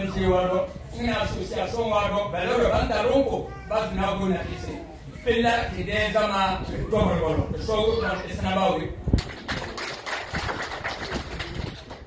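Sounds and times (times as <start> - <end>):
audience applauding: 9.2 - 12.0.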